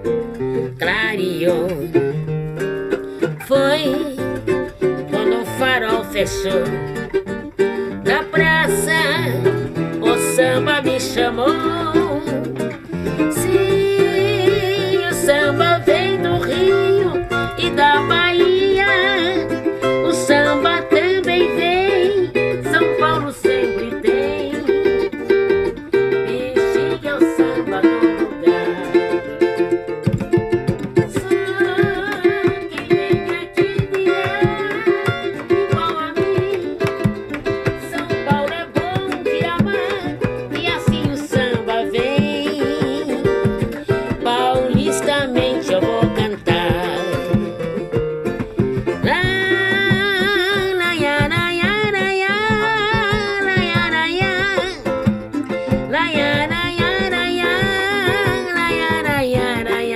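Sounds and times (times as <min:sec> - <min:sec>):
plucked strings melody: 0:00.0 - 0:59.9
hand drum strokes: 0:26.8 - 0:59.9.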